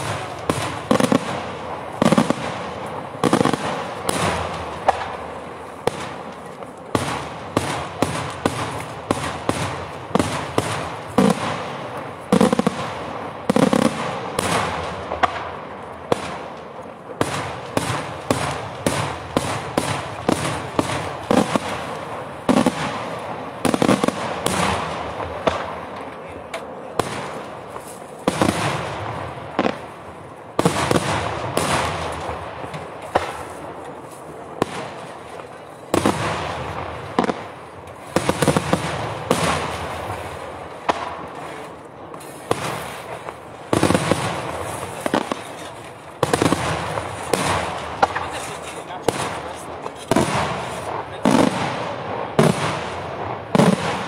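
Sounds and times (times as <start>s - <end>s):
fireworks exploding with loud bangs: 0.0s - 54.0s.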